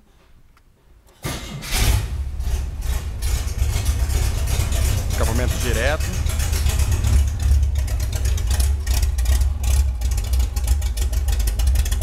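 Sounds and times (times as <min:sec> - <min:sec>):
car engine starting and running loud: 0:01.2 - 0:12.0.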